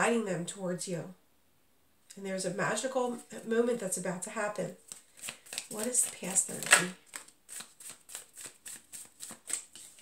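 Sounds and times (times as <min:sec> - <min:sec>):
cards being shuffled: 0:04.8 - 0:10.0.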